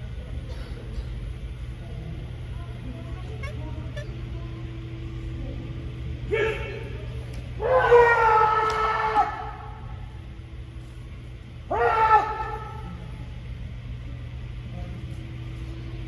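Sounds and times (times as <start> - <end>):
steady low hum: 0.0 - 16.0
people yelling shouts: 7.6 - 9.8, 11.6 - 13.0.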